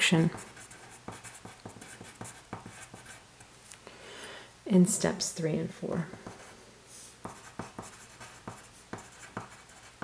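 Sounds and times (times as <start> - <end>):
pencil scratching on paper: 0.0 - 3.2, 7.2 - 10.0.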